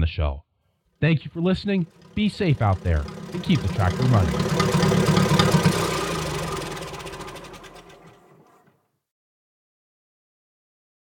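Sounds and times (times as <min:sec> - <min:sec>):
tractor engine running: 0:01.0 - 0:08.7.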